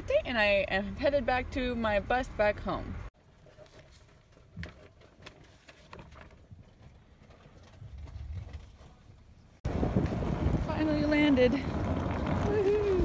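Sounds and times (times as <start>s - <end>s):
notebook pages rustling: 3.4s - 9.1s.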